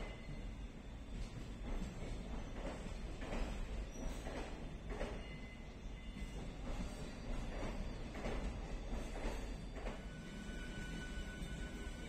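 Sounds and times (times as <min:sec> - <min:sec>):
train rumbling past: 0:00.0 - 0:12.0
train wheel clatter: 0:00.0 - 0:12.0.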